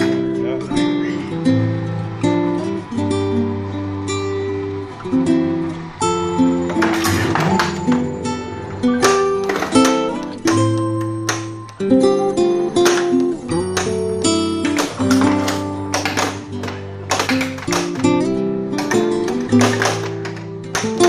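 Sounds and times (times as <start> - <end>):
acoustic guitar chords: 0.0 - 21.0.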